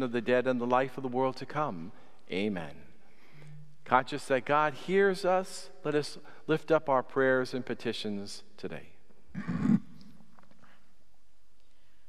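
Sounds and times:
person clearing throat: 9.3 - 10.2.

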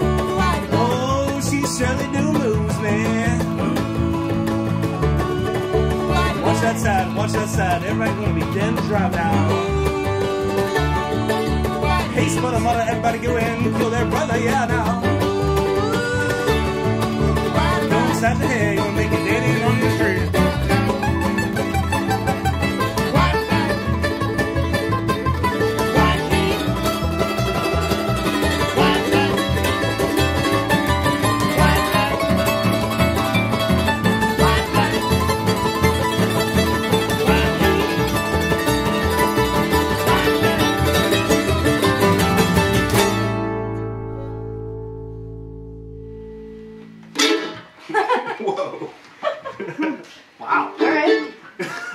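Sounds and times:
banjo: 0.0 - 49.8, 50.6 - 51.9
bluegrass string band playing: 0.0 - 51.7.

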